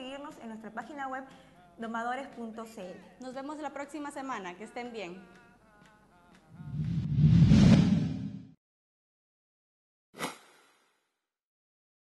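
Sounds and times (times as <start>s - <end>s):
whoosh transition effect: 6.6s - 8.6s.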